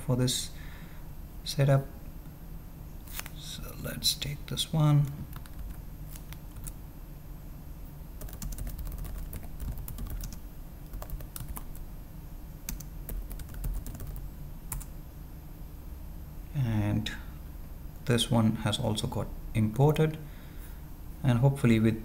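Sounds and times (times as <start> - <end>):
computer keyboard typing: 5.0 - 6.8, 8.2 - 11.8, 12.7 - 14.9.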